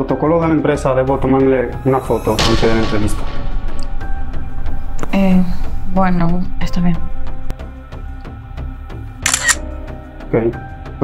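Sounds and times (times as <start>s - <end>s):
background music: 0.0s - 11.0s
phone camera shutter click: 9.2s - 9.6s.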